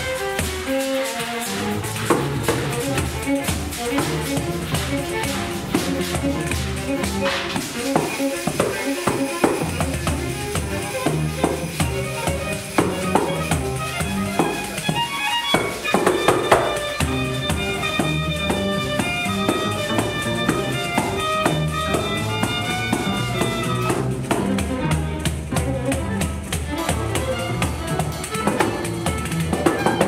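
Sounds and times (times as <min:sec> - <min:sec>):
frame drum with jingles: 0:00.0 - 0:30.0
violins bowing a melody: 0:00.0 - 0:30.0.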